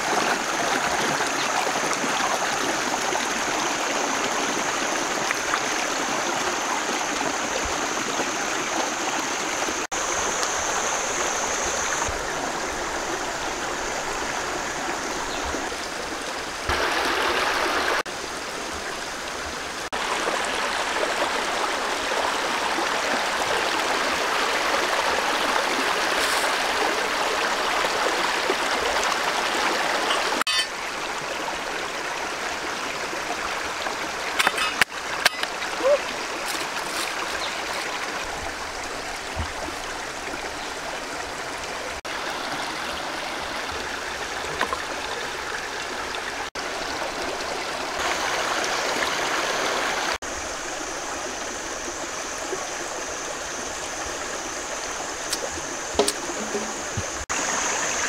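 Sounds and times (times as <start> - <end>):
stream running over rocks: 0.0 - 58.0
thin high tone: 30.1 - 30.7
sharp knocks: 56.0 - 57.2.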